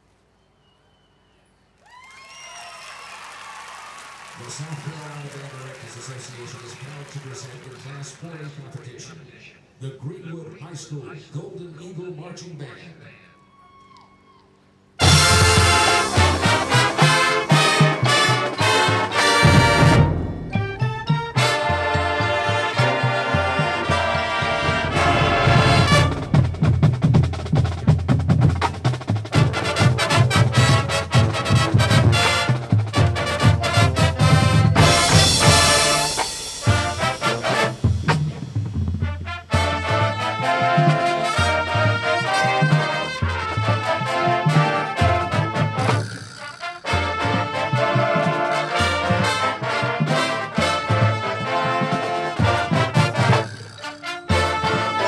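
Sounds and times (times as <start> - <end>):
marching band playing: 14.9 - 55.0
drum hits: 15.0 - 40.2.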